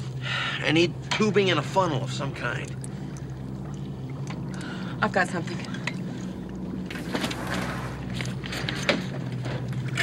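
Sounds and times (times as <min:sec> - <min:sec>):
propeller plane engines droning: 0:00.0 - 0:10.0.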